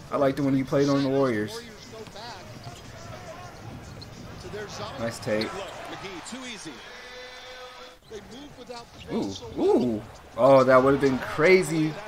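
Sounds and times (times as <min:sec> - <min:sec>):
arena crowd noise: 0:00.0 - 0:12.0
commentator speaking: 0:08.2 - 0:12.0.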